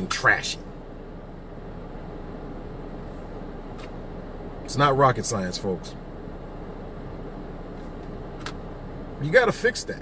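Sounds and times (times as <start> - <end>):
car interior hum: 0.0 - 10.0.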